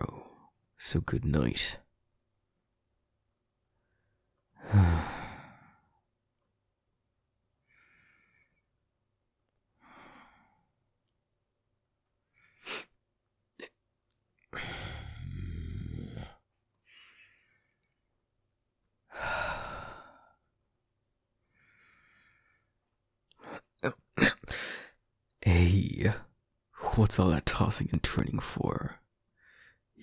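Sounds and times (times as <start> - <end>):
man sighing: 4.6 - 5.7, 14.5 - 16.4.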